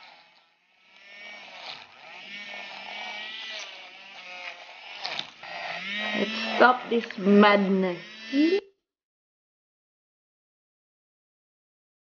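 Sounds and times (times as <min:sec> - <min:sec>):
handheld milk frother whirring: 0:00.0 - 0:08.7.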